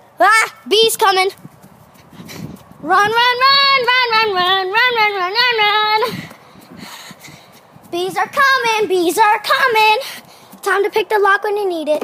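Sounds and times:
footsteps running on grass: 1.0 - 11.0.

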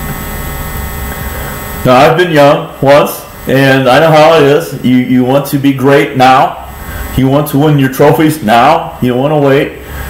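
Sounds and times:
mains hum with hiss: 0.0 - 10.0
man speaking: 1.8 - 9.9.

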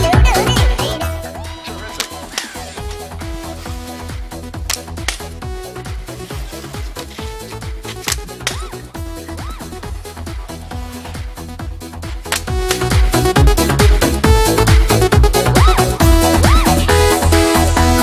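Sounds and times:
electronic dance music: 0.0 - 17.8.

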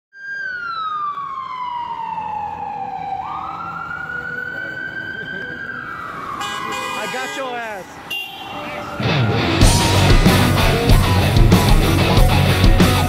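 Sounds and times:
emergency vehicle siren wailing: 0.1 - 12.6.

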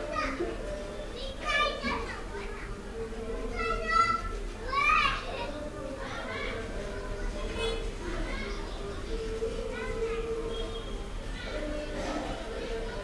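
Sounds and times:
children playing and calling out: 0.0 - 13.0
high-pitched children's shouts: 3.5 - 5.6.

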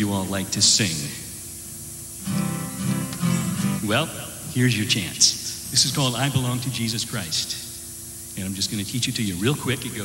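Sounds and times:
acoustic guitar strumming: 2.2 - 4.3.

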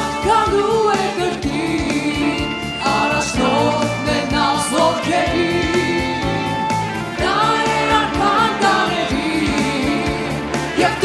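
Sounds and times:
instrumental backing: 0.0 - 11.0
vocalists singing gospel song: 0.0 - 11.0.

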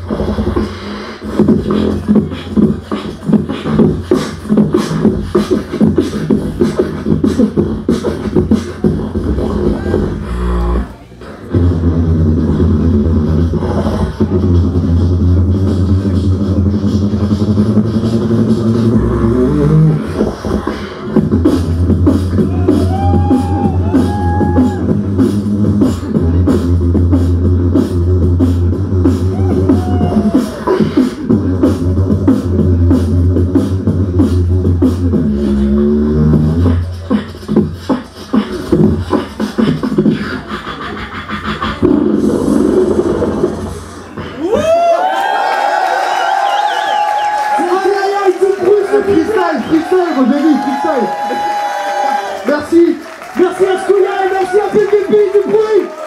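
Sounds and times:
beatboxing deep vocal bass: 0.0 - 45.2
beatbox percussive sounds: 0.0 - 56.0.

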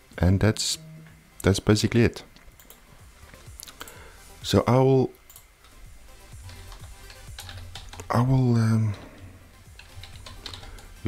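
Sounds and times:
background music: 0.0 - 11.0
typing on computer keyboard: 6.4 - 8.1, 9.7 - 11.0.

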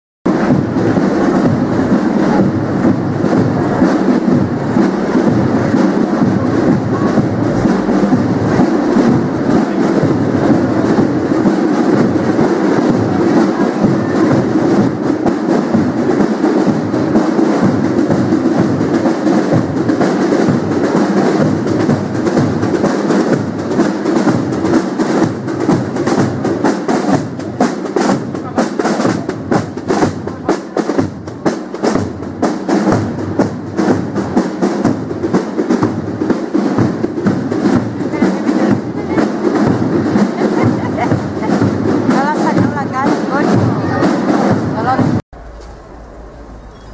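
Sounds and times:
marching drums beating: 0.2 - 46.9.

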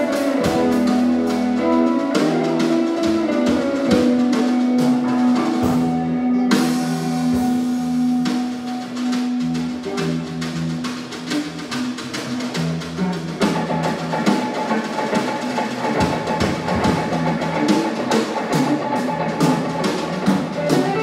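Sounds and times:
drum kit: 0.0 - 21.0
electric guitar: 0.0 - 21.0
electric mandolin: 0.0 - 21.0.

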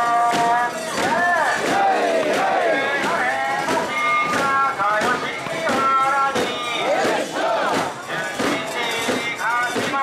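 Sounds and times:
crowd shouting a chant: 0.0 - 10.0.

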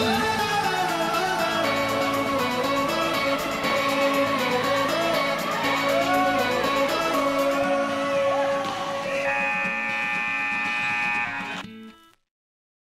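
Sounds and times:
scoreboard buzzer: 9.2 - 11.6.

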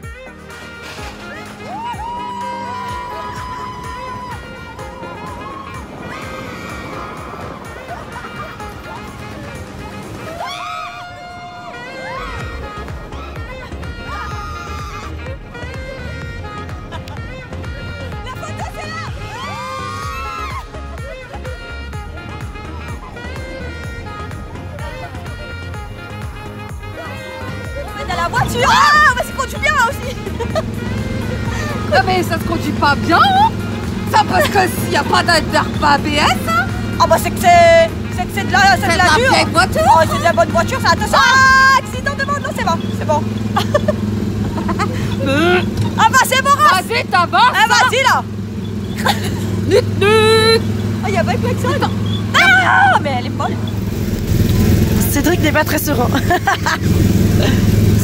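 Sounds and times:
women laughing: 1.2 - 48.2, 48.8 - 53.6, 55.5 - 58.0
women talking: 18.1 - 19.4, 26.9 - 43.9, 45.2 - 48.3, 49.0 - 53.7, 54.8 - 56.8
small engine running steadily: 20.8 - 58.0.

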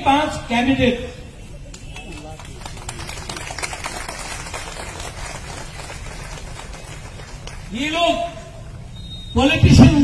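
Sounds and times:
crowd applauding: 1.7 - 7.8.

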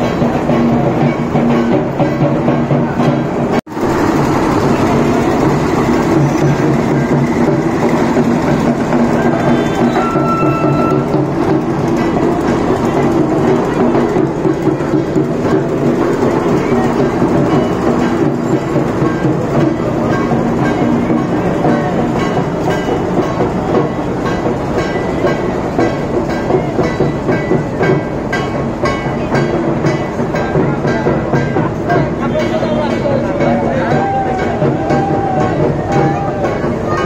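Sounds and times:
music: 0.0 - 3.6, 4.7 - 37.0
crowd voices: 0.0 - 37.0
rhythmic beats: 0.0 - 37.0.

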